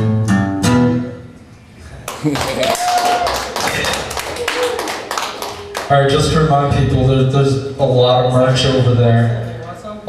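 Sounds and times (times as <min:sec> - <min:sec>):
audience clapping: 0:02.0 - 0:06.2
person cheering: 0:02.1 - 0:05.8.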